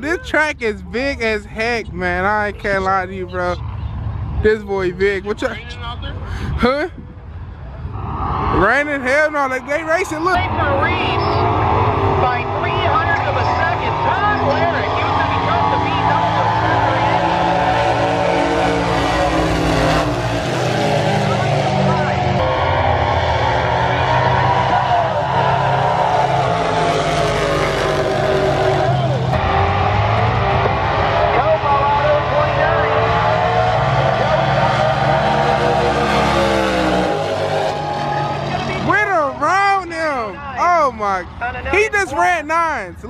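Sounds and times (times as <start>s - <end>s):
people talking: 0.0s - 7.0s, 8.6s - 11.4s, 12.2s - 17.3s, 21.2s - 22.4s, 31.2s - 33.2s, 38.5s - 43.0s
drag car engines rumbling: 0.0s - 43.0s
indistinct voices: 7.7s - 20.2s.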